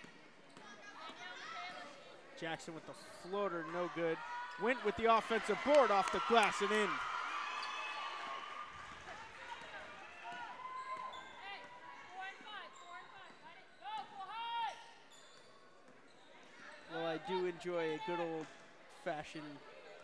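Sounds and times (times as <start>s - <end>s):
sneakers squeaking on wooden floor: 10.3s - 14.1s, 14.7s - 16.9s.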